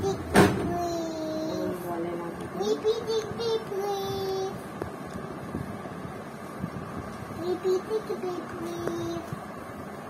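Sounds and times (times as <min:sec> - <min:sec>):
child singing: 0:00.0 - 0:01.7, 0:02.6 - 0:04.6, 0:07.4 - 0:09.3
low room noise: 0:00.0 - 0:10.0.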